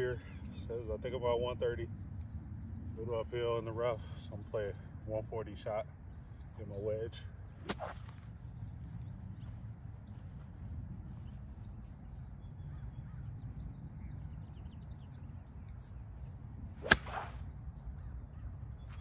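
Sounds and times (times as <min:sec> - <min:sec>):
club swish: 0:16.8 - 0:17.4
golf club striking ball: 0:16.8 - 0:17.5.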